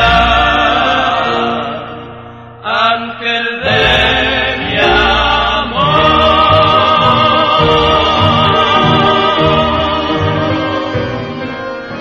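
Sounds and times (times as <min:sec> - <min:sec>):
orchestra music: 0:00.0 - 0:02.8, 0:03.6 - 0:12.0.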